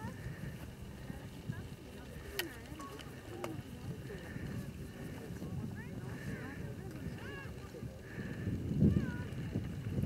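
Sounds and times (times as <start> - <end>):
faint voices: 0.0 - 10.0
wind buffeting microphone: 0.0 - 10.0.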